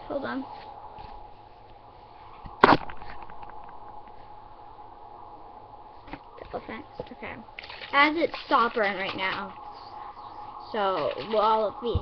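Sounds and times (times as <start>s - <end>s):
sharp knock: 2.6s - 3.7s
faint clicks and rustles: 6.0s - 12.0s.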